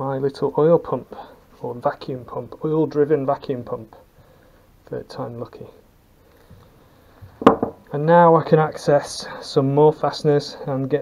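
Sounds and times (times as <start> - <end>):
metal part knocking on workbench: 7.4 - 7.8.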